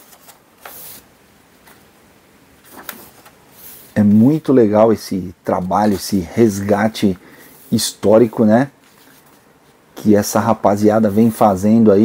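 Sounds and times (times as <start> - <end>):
paper page turning: 0.0 - 1.0, 2.6 - 3.9.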